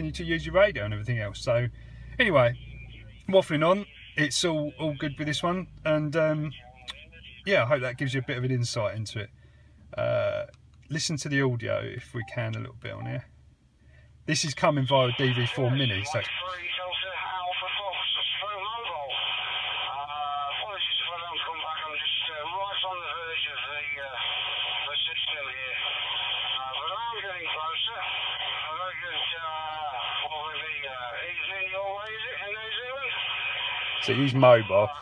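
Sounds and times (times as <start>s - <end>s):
person talking over radio: 0.0s - 9.0s, 12.0s - 13.2s, 14.4s - 35.0s.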